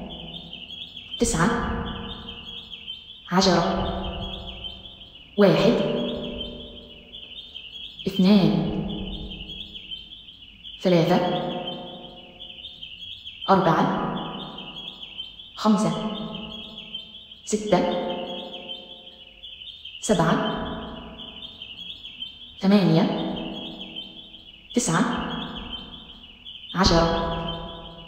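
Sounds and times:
small birds chirping: 0.0s - 28.0s
person speaking: 5.4s - 6.2s.

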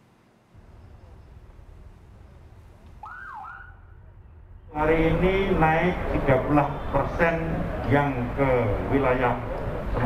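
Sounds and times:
low outdoor rumble: 0.0s - 10.0s
police siren whoop: 3.0s - 3.9s.

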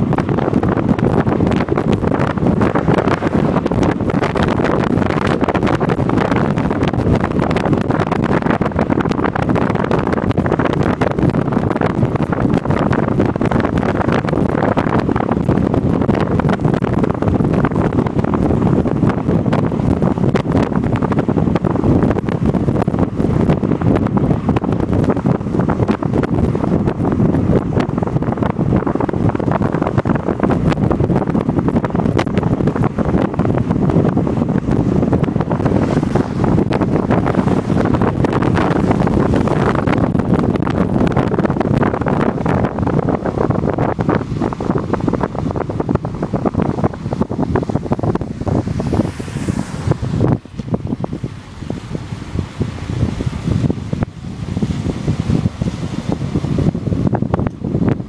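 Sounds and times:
vehicle running and road noise: 0.0s - 58.0s
wind buffeting microphone: 0.0s - 58.0s.

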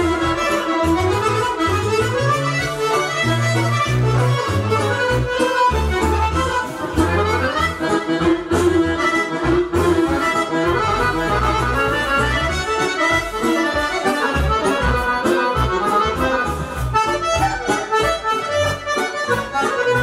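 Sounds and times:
accordion: 0.0s - 20.0s
rhythmic bass line: 0.0s - 20.0s.

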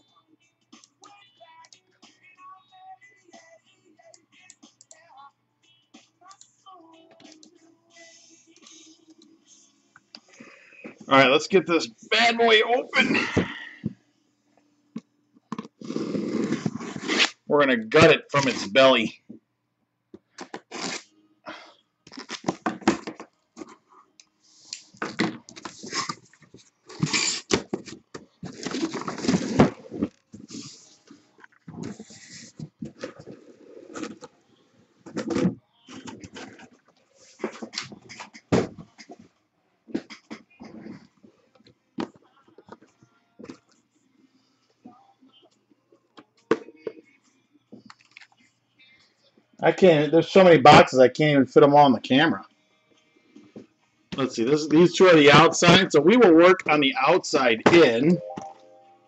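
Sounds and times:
cardboard ripping and rustling: 26.9s - 30.2s.

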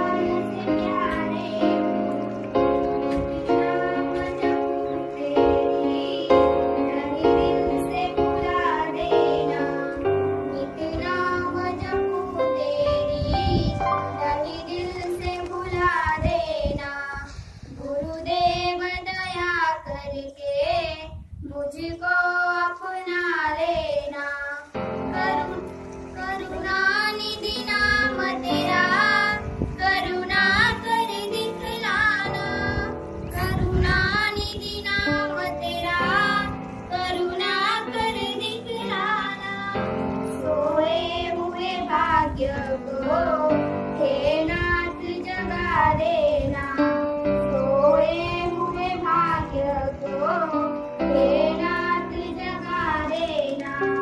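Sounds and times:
girls singing into a microphone: 0.0s - 54.0s.

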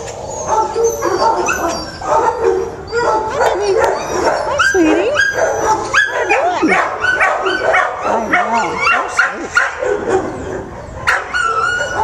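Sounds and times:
dog high steady whine: 0.0s - 12.0s
dog yipping: 0.3s - 12.0s.

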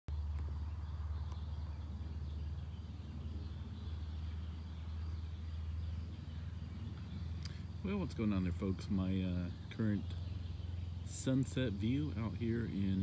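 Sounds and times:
faint birds chirping: 0.1s - 13.0s
low rumble: 0.1s - 13.0s.

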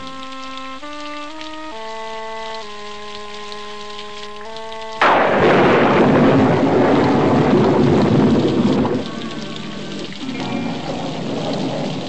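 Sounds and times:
soft music: 0.0s - 6.9s, 8.8s - 12.0s
heavy rain: 0.0s - 12.0s
thunder rumble: 5.0s - 12.0s.

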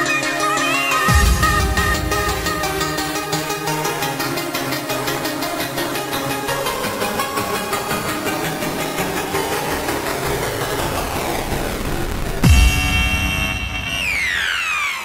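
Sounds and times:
fast repeating synth pattern: 1.0s - 14.9s
falling synth sweep: 6.7s - 15.0s
noise layer: 8.3s - 15.0s.

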